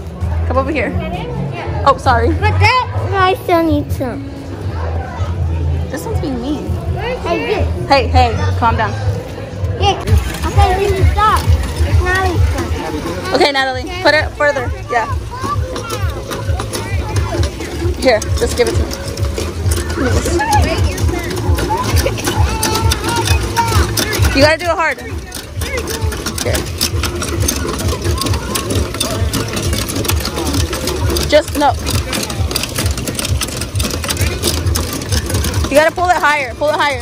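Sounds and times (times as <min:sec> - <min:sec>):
background music: 0:00.0 - 0:37.0
crowd chatter: 0:00.0 - 0:37.0
children's voices: 0:02.4 - 0:05.7, 0:09.7 - 0:32.6
engine running with uneven pulsing: 0:10.0 - 0:37.0.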